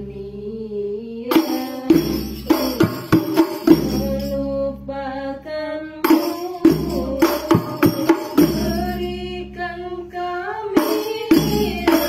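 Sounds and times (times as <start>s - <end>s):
women singing long held notes: 0.0s - 12.0s.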